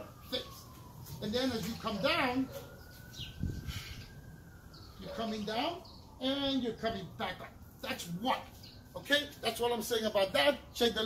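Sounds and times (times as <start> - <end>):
bird chirp: 1.6 - 7.1, 8.5 - 9.1.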